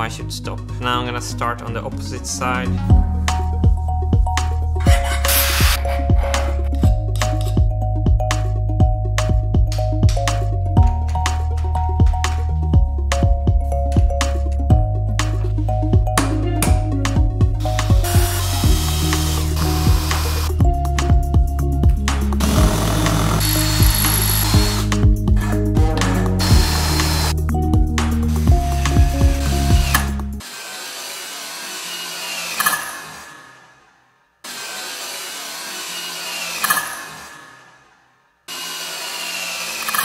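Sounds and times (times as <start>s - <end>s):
music with bass and clicking beat: 1.5s - 30.4s
drilling into metal: 4.9s - 5.8s, 17.8s - 20.5s, 22.4s - 27.3s, 29.6s - 33.4s, 34.4s - 37.7s, 38.5s - 40.0s.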